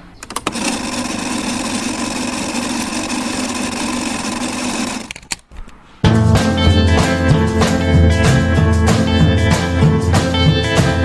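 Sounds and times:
tape machine motor whirring: 0.2s - 5.3s.

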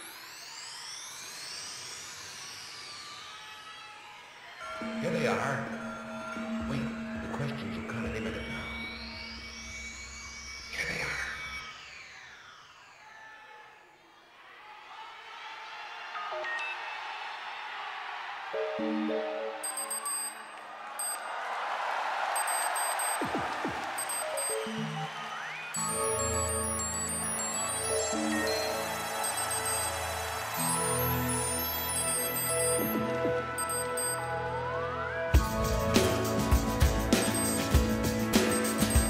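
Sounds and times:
sweeping synthesizer tones: 22.4s - 35.6s.

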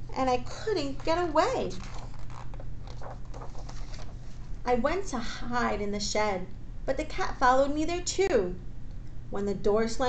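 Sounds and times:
low steady hum: 0.0s - 10.0s
paper pages rustling: 1.0s - 4.5s.

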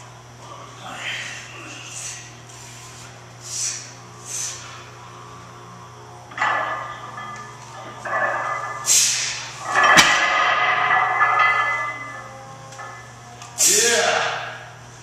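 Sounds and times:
forceful hissing breath: 0.9s - 5.1s, 8.9s - 9.6s
man yelling: 13.6s - 14.4s.

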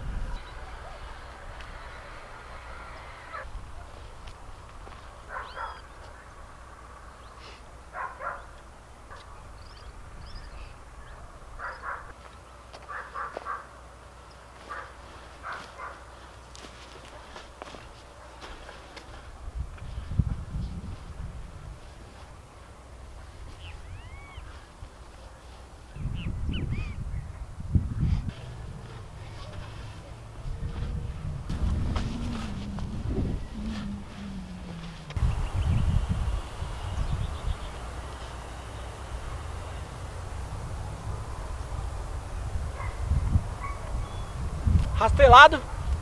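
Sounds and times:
birds calling: 0.0s - 20.2s, 22.3s - 46.0s
rake scraping through soil: 28.2s - 32.9s.

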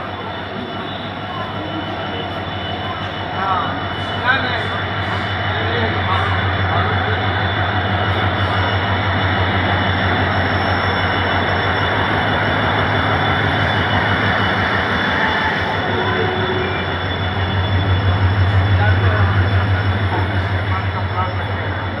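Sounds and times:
diesel locomotive engine drone: 0.0s - 22.0s.

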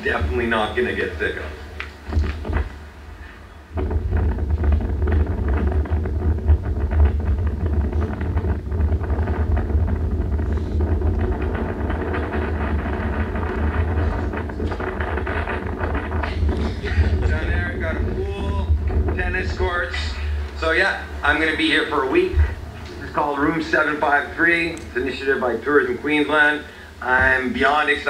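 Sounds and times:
wind buffeting microphone: 0.0s - 27.6s.

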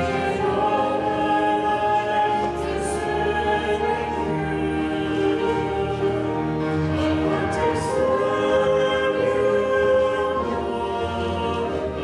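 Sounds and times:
choir singing long held notes: 0.0s - 12.0s.

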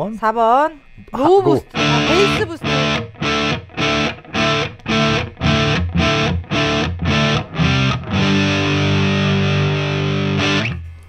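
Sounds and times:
overdriven electric guitar chord ringing: 1.7s - 10.8s.

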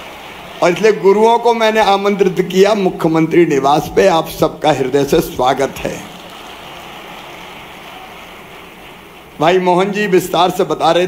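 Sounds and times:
crowd applauding: 0.0s - 1.7s, 5.4s - 10.2s.

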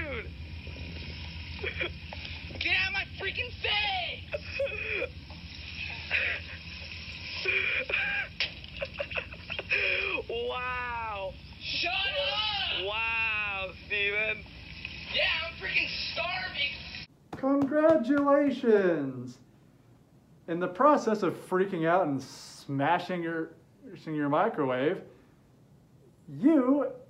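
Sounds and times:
man speaking: 17.4s - 19.5s, 20.5s - 25.1s, 26.2s - 27.0s.

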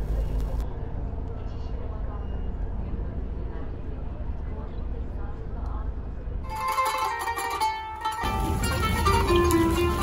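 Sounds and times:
steady low rumble: 8.2s - 10.0s.

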